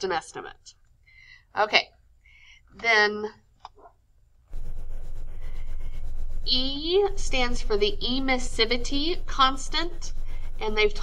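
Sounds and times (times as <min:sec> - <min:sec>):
steady low rumble: 0:04.5 - 0:11.0.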